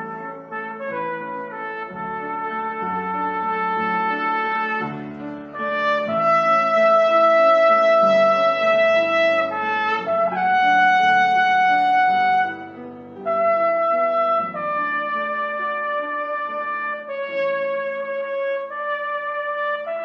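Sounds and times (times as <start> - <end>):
cornet playing slow melody: 0.0 - 20.0
soft piano accompaniment: 0.0 - 20.0.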